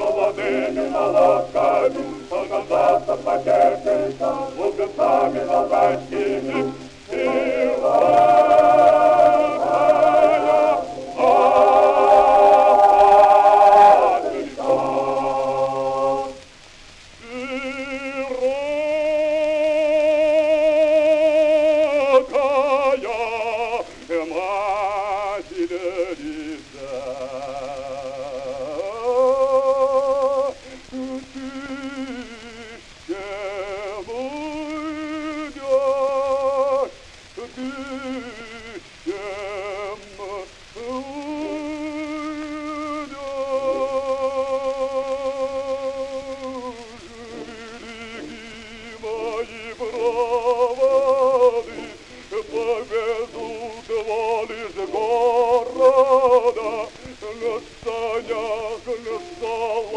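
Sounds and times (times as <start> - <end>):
male opera singing: 0.0 - 59.9
recording surface hiss: 0.0 - 59.9.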